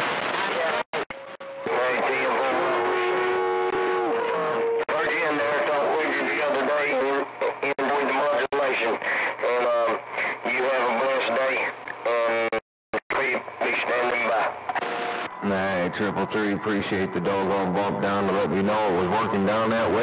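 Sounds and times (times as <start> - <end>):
radio voices talking: 0.4 - 20.0.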